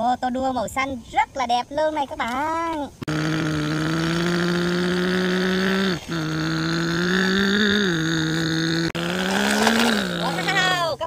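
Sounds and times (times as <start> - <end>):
truck engine drone: 3.0 - 10.8.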